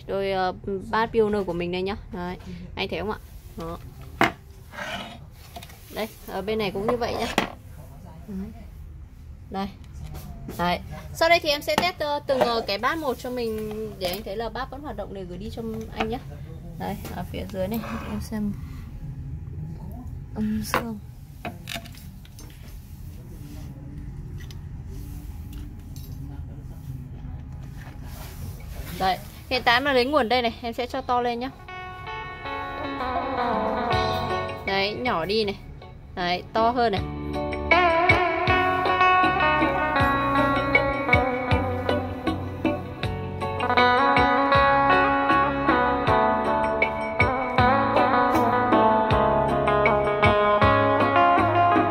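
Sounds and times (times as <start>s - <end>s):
dry scrape on hard surface: 4.6s - 7.6s, 17.8s - 18.3s.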